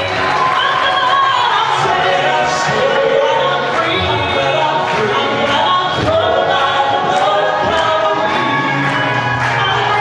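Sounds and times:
musical accompaniment: 0.0s - 10.0s
vocal group singing in harmony: 0.0s - 10.0s
steady clapping: 4.7s - 10.0s.

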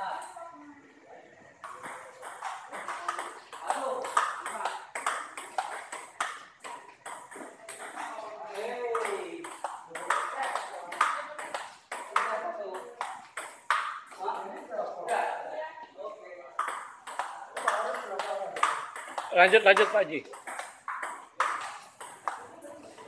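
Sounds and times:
people talking: 0.0s - 5.6s, 7.3s - 13.1s, 14.1s - 20.4s
table tennis balls clicking: 1.6s - 15.4s, 16.5s - 23.0s.

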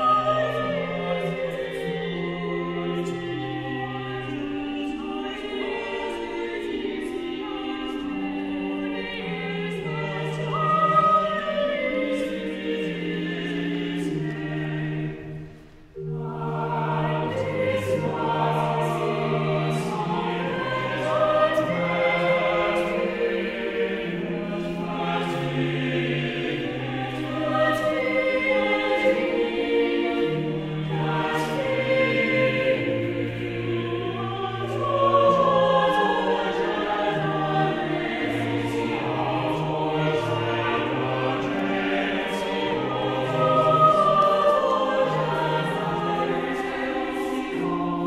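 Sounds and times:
mixed choir singing: 0.0s - 48.0s.

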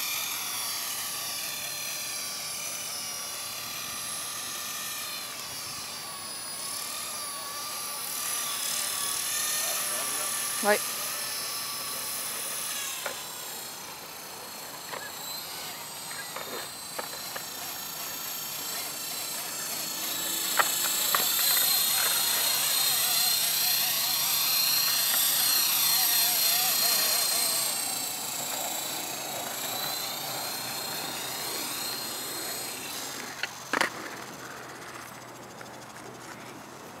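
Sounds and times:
rc helicopter rotor whine: 0.0s - 37.0s.

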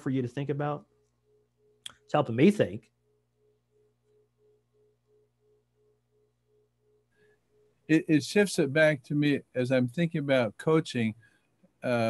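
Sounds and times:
steady low hum: 0.0s - 11.2s
faint electronic beeping: 0.0s - 12.0s.

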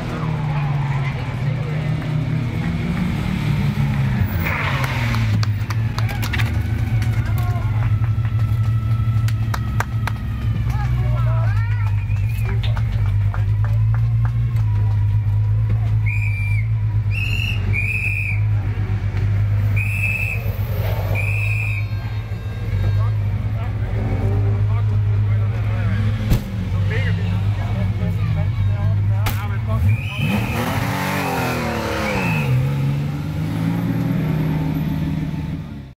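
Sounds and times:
car engine idling and revving: 0.0s - 36.0s.

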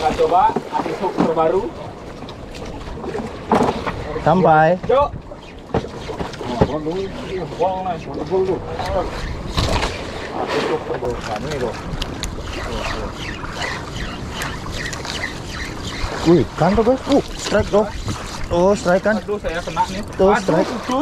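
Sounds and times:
sea noise: 0.0s - 21.0s
wind: 0.0s - 21.0s.

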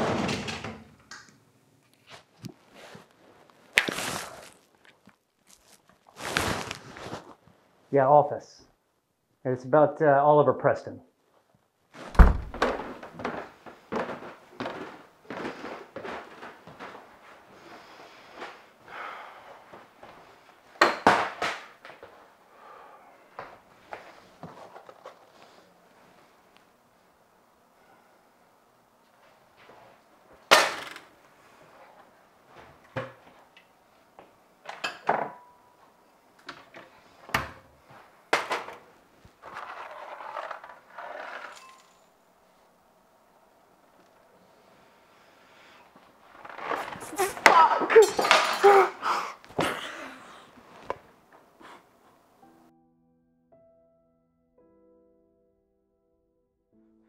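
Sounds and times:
footsteps stomping up wooden stairs: 12.1s - 16.9s.

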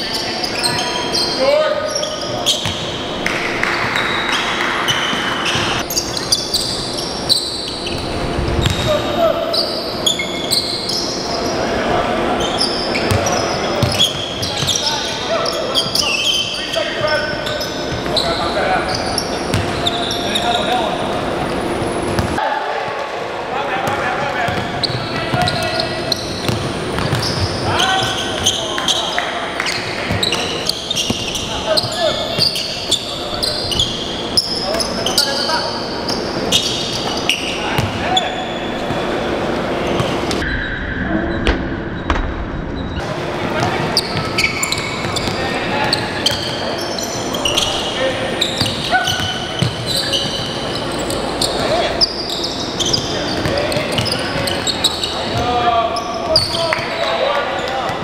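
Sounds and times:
sneakers squeaking: 0.0s - 22.4s, 23.8s - 40.7s, 42.8s - 58.0s
players calling out: 0.0s - 40.7s, 43.0s - 58.0s
basketball bouncing: 19.5s - 19.8s, 22.1s - 22.4s, 26.4s - 28.5s.

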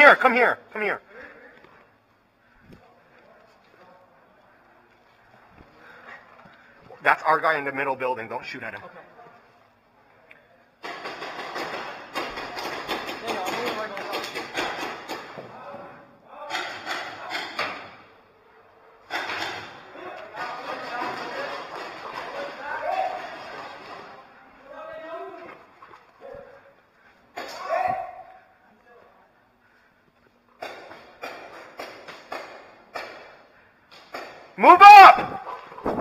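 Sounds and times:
rapid paintball marker fire: 10.8s - 15.3s
faint distant shouting: 27.4s - 28.6s.

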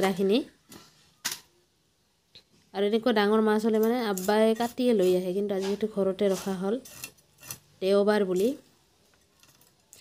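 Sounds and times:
woman talking: 0.0s - 0.6s, 2.7s - 6.9s, 7.8s - 8.7s.

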